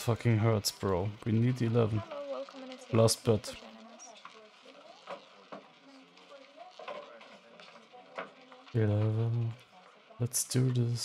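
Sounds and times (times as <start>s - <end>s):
faint voices: 0.0s - 11.0s
roulette wheel spinning: 0.0s - 11.0s.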